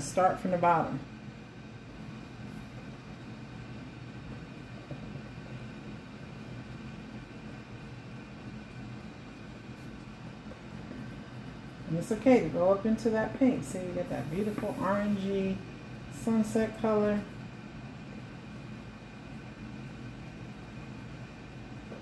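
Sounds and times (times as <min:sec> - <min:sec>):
room hum and hiss: 0:00.0 - 0:22.0.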